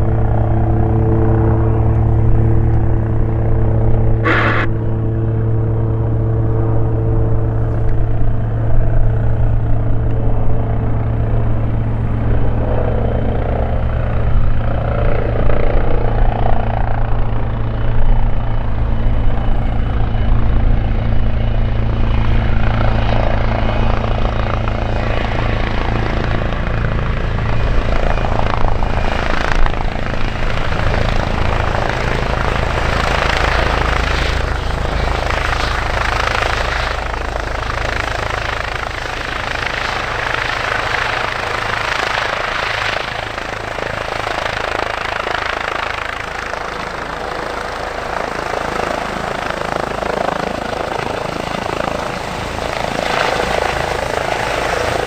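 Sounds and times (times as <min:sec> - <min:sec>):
low helicopter rotor drone: 0:00.0 - 0:55.0
turbine and tail rotor whine: 0:00.0 - 0:55.0.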